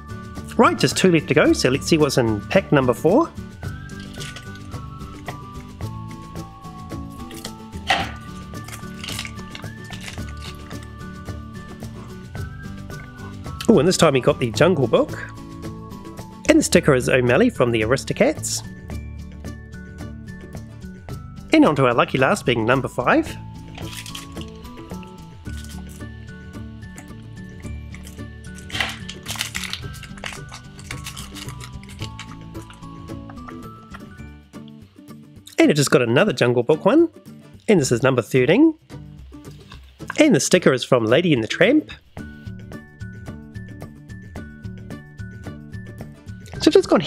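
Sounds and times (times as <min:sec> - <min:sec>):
background music: 0:00.0 - 0:47.0
scissors cutting wrapper: 0:03.8 - 0:04.7, 0:08.2 - 0:11.0, 0:23.7 - 0:26.1, 0:27.8 - 0:34.0
foil packet crinkling: 0:03.8 - 0:05.2, 0:07.2 - 0:11.0, 0:23.6 - 0:26.1, 0:27.8 - 0:34.0
wrapper and cards rustling: 0:03.8 - 0:05.8, 0:07.1 - 0:11.1, 0:23.6 - 0:26.1, 0:27.8 - 0:34.1.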